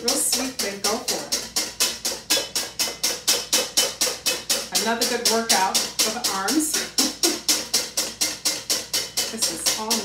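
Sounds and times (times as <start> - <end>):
whisk clattering in metal bowl: 0.0 - 10.0.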